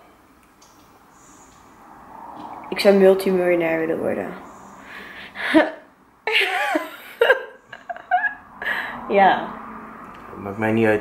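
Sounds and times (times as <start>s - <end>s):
woman laughing: 5.2s - 9.0s
man laughing: 5.4s - 8.8s.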